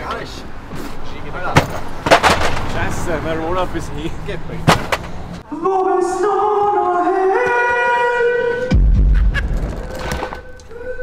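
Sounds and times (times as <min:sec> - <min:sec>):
hard cases banging in van: 0:01.5 - 0:03.0, 0:04.6 - 0:05.4.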